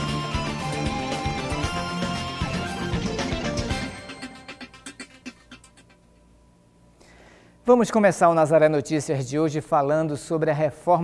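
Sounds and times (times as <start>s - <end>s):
news theme music hits: 0.0s - 4.9s.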